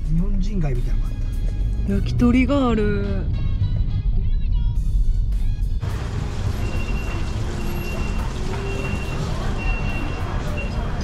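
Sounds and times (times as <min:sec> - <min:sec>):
road rumble inside car: 0:01.3 - 0:11.0
busy street noise: 0:05.8 - 0:11.0.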